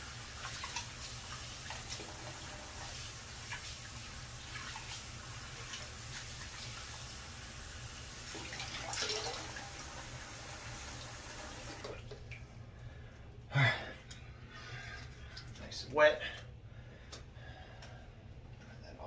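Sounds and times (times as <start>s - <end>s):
sink tap running: 0.0s - 12.3s.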